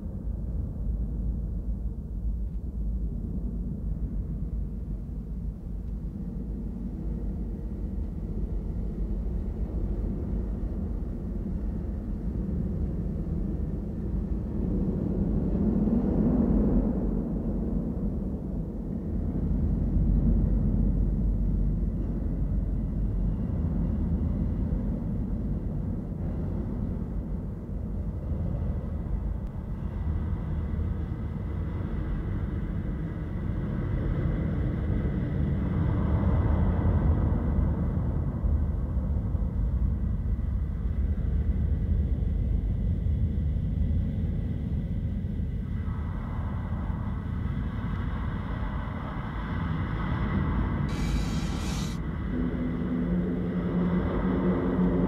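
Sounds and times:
faint high steady tone: 50.9 - 52.0
low rumbling drone: 50.9 - 52.0.

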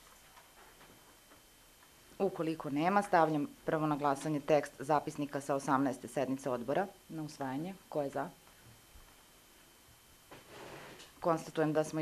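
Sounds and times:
faint high hum: 0.0 - 12.0.

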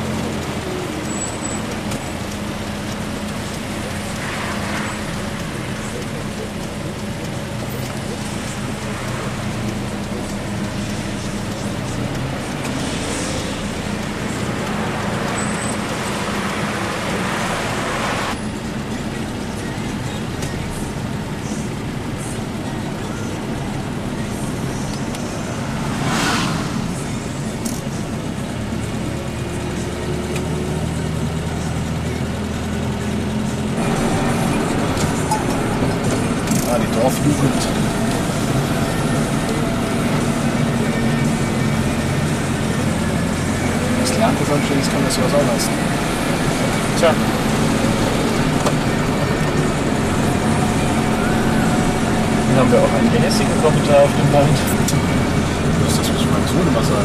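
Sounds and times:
car engine hum: 0.0 - 57.0
road noise: 0.0 - 57.0.

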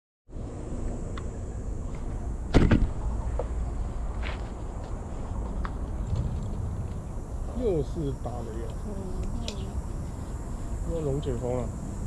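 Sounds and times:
steady low rumble: 0.3 - 12.0
drone knocking on ground: 2.5 - 3.6.

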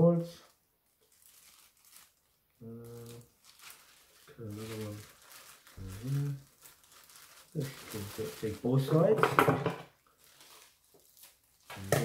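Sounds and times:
plastic bag crinkling: 0.4 - 12.0
man humming: 5.8 - 6.4.

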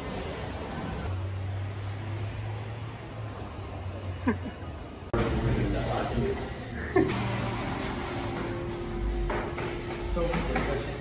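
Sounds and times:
faint background music: 5.1 - 11.0.

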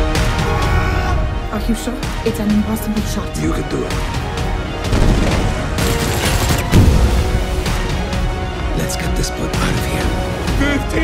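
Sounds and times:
action film score: 0.0 - 11.0
rapid gunfire: 4.9 - 6.8.

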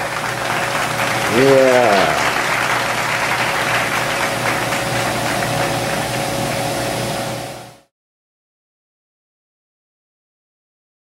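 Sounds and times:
constant hum: 0.0 - 7.6.

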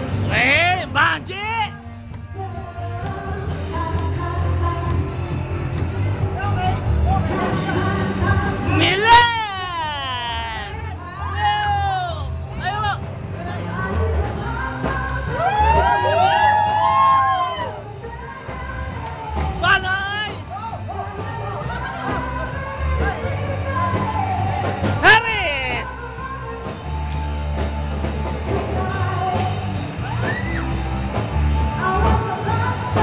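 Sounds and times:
music with steady bass: 0.0 - 33.0.

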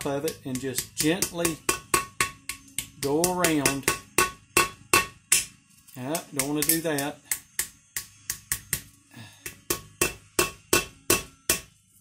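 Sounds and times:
hammer tapping metal: 0.0 - 5.6, 6.2 - 11.8.

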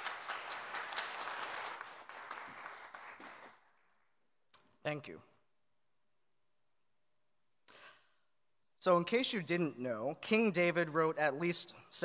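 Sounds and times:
congregation applauding: 0.0 - 4.0.

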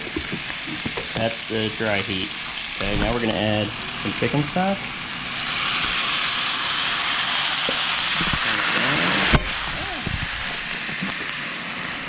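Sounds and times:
stock sizzling in hot pan: 0.0 - 12.0.

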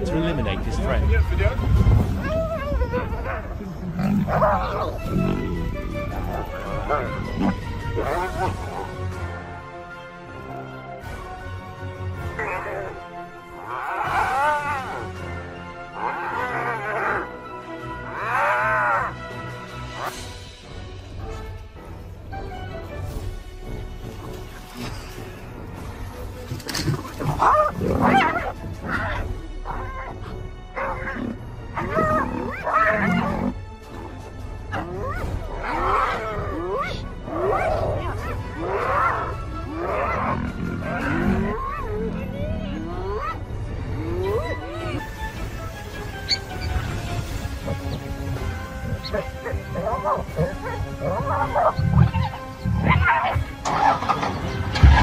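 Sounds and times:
lion growling: 0.0 - 9.4, 12.2 - 17.4, 24.1 - 45.2, 46.2 - 55.0
background music: 0.0 - 55.0
hyenas yelping and whooping: 2.0 - 9.0, 13.6 - 17.4, 26.8 - 33.6, 34.7 - 45.1, 46.2 - 55.0.

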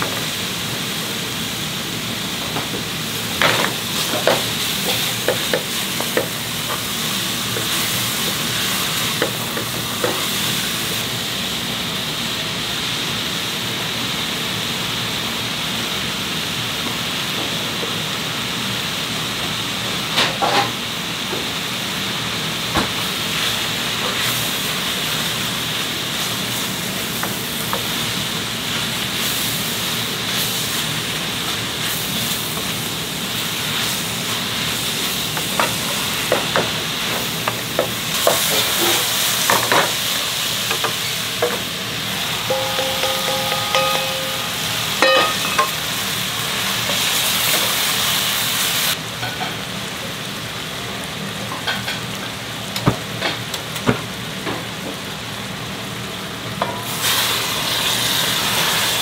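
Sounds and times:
vegetables and meat sizzling: 0.0 - 59.0.

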